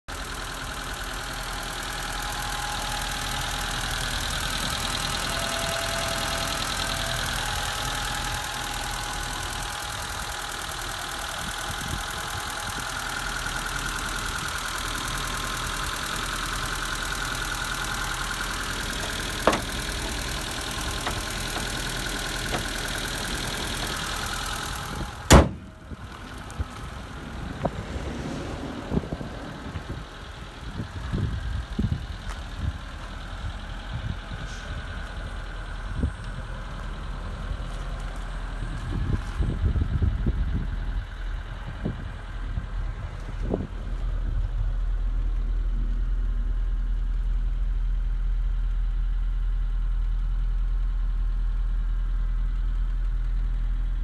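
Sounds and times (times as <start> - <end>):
car engine idling: 0.1 - 54.0
bonnet slamming shut: 25.3 - 25.7.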